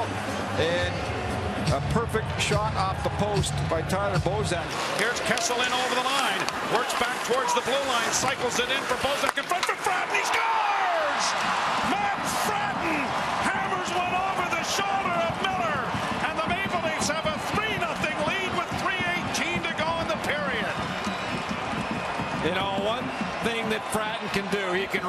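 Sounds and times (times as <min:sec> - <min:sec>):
crowd din with voices: 0:00.0 - 0:25.0
hockey sticks and puck clacking: 0:04.7 - 0:10.9, 0:13.4 - 0:20.3.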